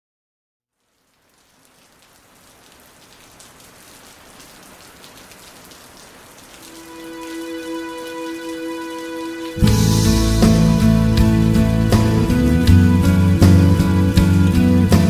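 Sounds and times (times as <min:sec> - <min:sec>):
crackly rain-like noise: 0:00.6 - 0:15.0
sustained note with overtones: 0:06.7 - 0:14.1.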